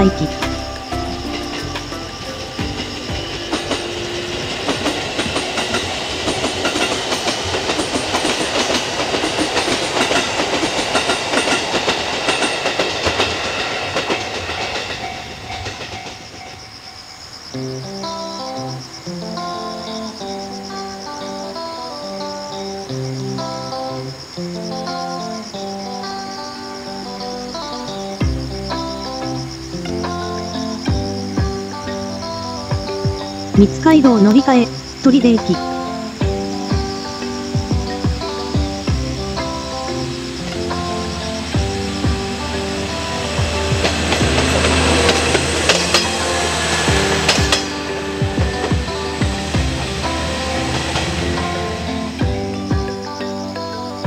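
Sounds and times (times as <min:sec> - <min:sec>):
background music: 0:00.0 - 0:54.0
train wheels clattering on rails: 0:00.4 - 0:17.6, 0:35.4 - 0:53.3.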